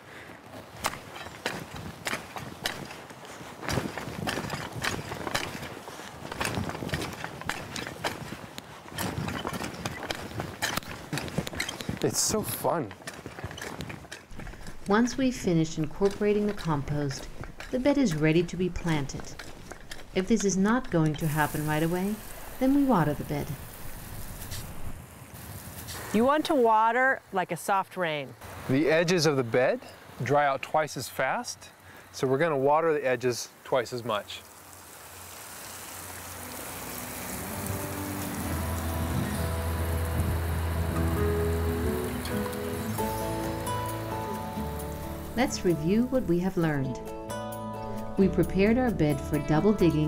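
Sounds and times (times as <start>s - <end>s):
garden fork crunching soil: 0.7s - 26.3s
water spraying from a hose: 20.6s - 27.8s, 32.2s - 46.5s
wind rumble on microphone: 38.8s - 40.7s.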